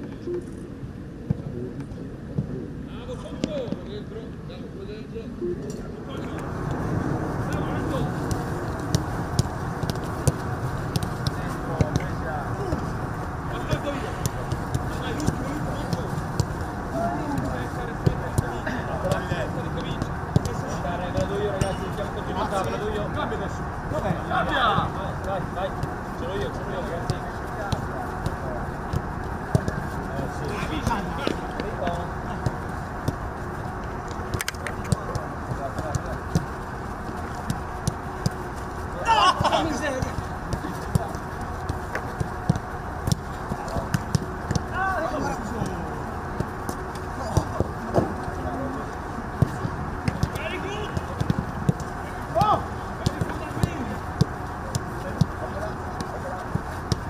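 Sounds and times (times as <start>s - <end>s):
boots kicking football thuds: 6.3s - 23.4s, 24.0s - 57.0s.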